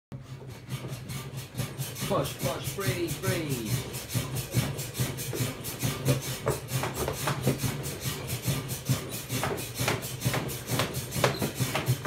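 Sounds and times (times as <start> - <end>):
mechanical horse frame rasping: 0.2 - 12.0.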